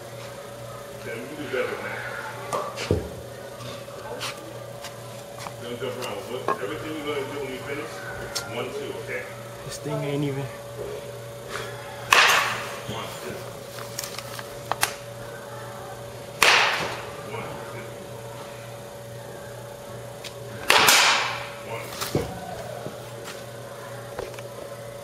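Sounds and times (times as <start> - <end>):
steady hum: 0.0 - 25.0
bat hitting ball: 12.1 - 12.9, 16.4 - 17.1, 20.6 - 21.6.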